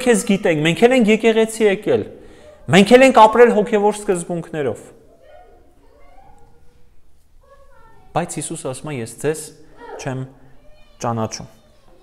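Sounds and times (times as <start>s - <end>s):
man speaking: 0.0s - 5.0s, 8.1s - 10.4s, 11.0s - 11.6s.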